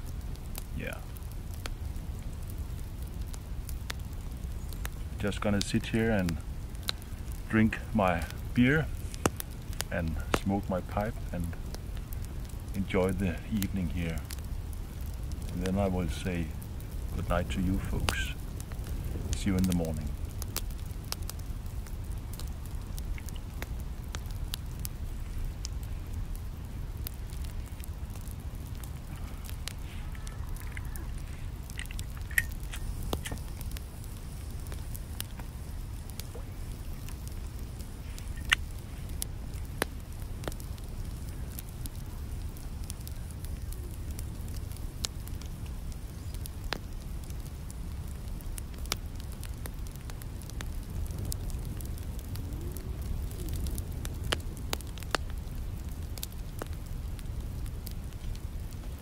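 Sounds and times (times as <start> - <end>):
steady low rumble: 0.0 - 59.0
twigs crackling in wood stove: 0.0 - 59.0
sharp pops: 29.4 - 33.8, 38.1 - 38.8.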